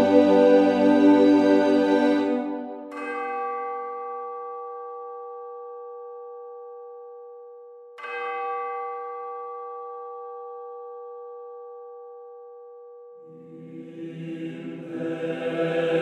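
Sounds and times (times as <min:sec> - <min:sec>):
large bell ringing: 0:00.0 - 0:07.3, 0:08.0 - 0:12.2.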